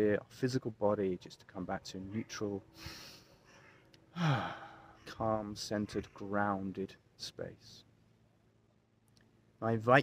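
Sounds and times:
man sighing: 4.1 - 5.0.

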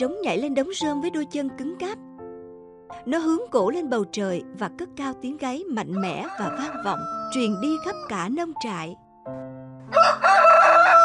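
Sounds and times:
soft background music: 0.0 - 11.0
rooster crowing: 6.0 - 8.0, 9.9 - 11.0.

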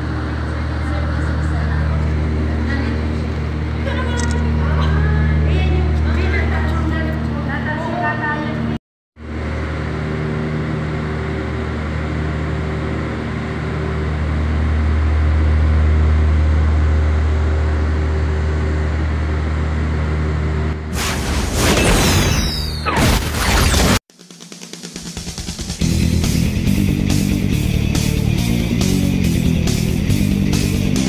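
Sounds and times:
low mechanical hum: 0.0 - 23.9.

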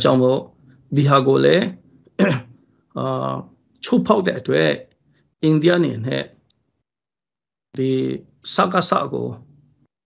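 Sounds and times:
man speaking: 0.0 - 6.4, 7.8 - 9.5.

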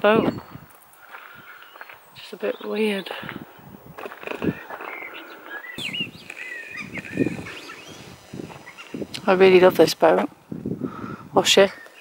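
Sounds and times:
small birds chirping: 0.0 - 10.3, 10.9 - 12.0
footsteps and rustle: 0.2 - 10.3.

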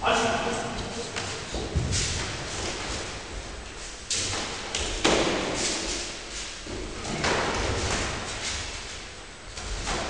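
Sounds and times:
thuds of kicks and punches: 4.3 - 5.6.

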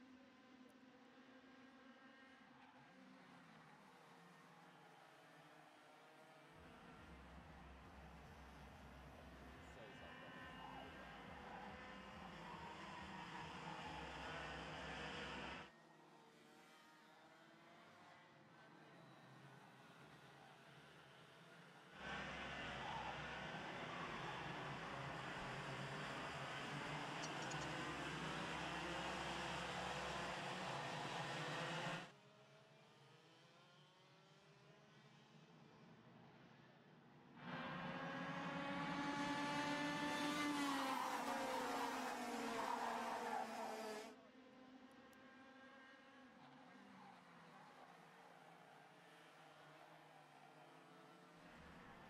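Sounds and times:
kart engines racing past: 0.0 - 32.3, 37.2 - 52.0.

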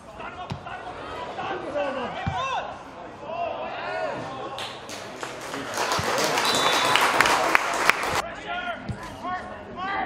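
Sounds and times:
spectators applauding: 4.6 - 8.2.

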